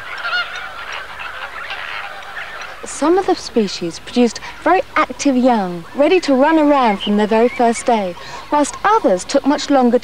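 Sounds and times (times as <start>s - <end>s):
flamingos honking: 0.0s - 10.0s.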